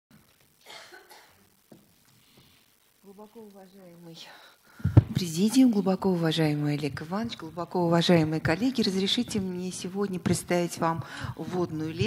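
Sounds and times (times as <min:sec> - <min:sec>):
person coughing: 0:00.6 - 0:01.4.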